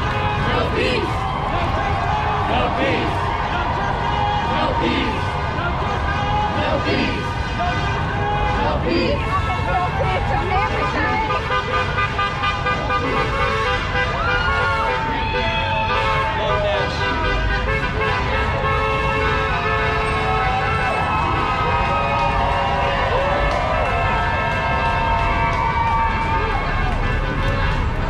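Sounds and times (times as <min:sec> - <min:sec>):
crowd voices and shouts: 0:00.0 - 0:28.0
car horn toots: 0:05.8 - 0:21.1.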